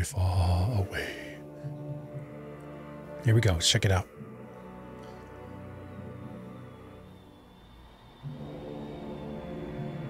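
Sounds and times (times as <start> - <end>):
ominous low film music: 0.0 - 10.0.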